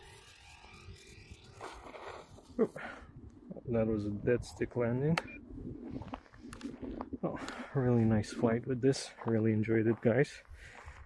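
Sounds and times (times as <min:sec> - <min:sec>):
wind rumble on microphone: 0:01.7 - 0:08.7.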